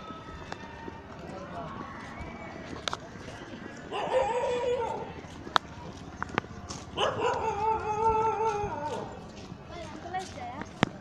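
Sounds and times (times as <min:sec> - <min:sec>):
people chatting: 0:08.8 - 0:10.8.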